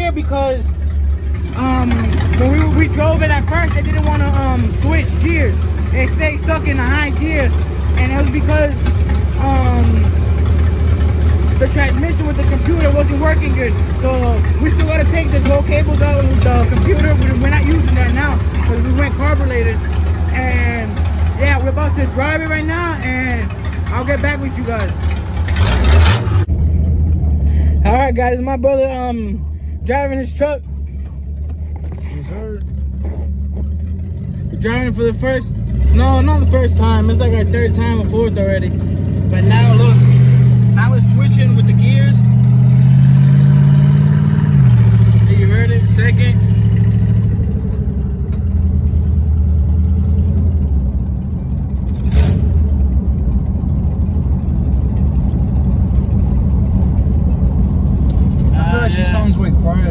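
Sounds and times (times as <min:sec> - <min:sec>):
engine low rumble: 0:00.0 - 0:59.9
loud exhaust rush: 0:00.0 - 0:59.9.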